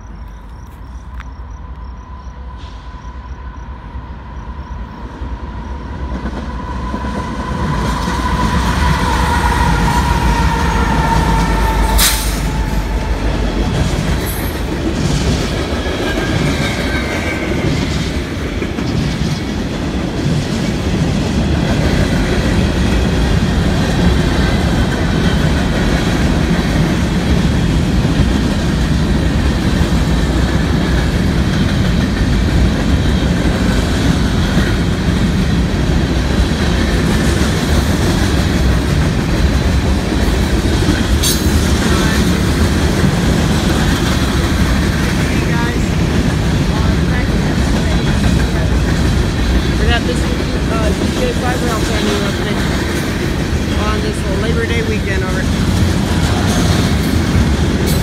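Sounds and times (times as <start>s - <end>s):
freight train rumbling past: 0.0s - 58.0s
wheels clacking over rails: 6.0s - 58.0s.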